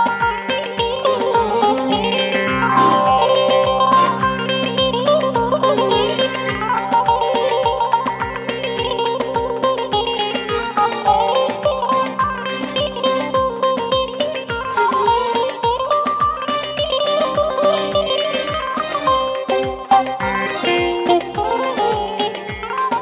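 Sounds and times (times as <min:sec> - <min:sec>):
plucked string melody: 0:00.0 - 0:23.0
steady drum beat: 0:00.1 - 0:23.0.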